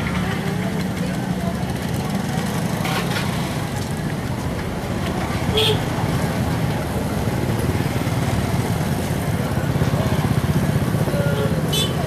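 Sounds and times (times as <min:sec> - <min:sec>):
car engines running: 0:00.0 - 0:11.9
motorbike engines running: 0:00.0 - 0:12.0.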